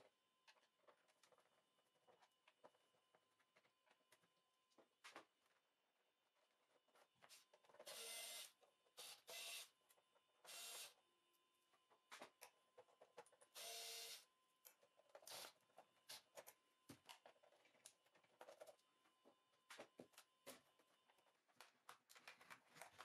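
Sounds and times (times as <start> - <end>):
electric screwdriver whirring: 7.8 - 9.7, 10.5 - 10.9, 13.6 - 14.2
screws and plastic clicking: 14.6 - 16.6.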